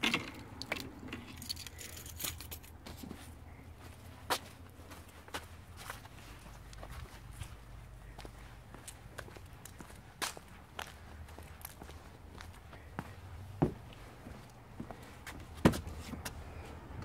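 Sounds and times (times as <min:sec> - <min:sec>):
steady low rumble: 0:00.4 - 0:17.0
footsteps on path and paving: 0:02.8 - 0:16.4
footsteps on wooden deck: 0:02.8 - 0:16.7.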